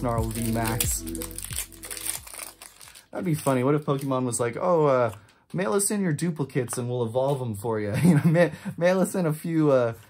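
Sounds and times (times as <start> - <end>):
background music: 0.0 - 3.4
plastic packaging crinkling: 0.0 - 4.5.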